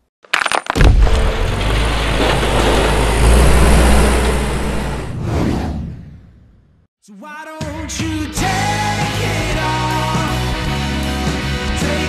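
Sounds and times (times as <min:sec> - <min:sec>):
deep rumble: 0:00.8 - 0:06.6.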